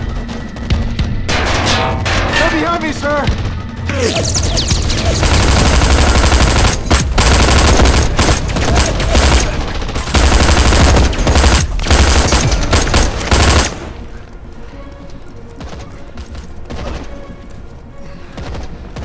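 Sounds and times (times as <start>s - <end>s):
automatic gunfire: 4.2s - 13.9s.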